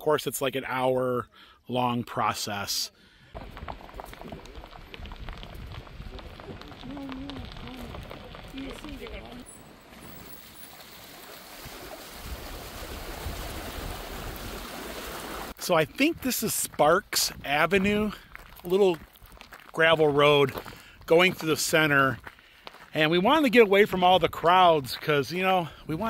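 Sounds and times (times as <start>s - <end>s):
water rushing over concrete: 3.4s - 15.8s.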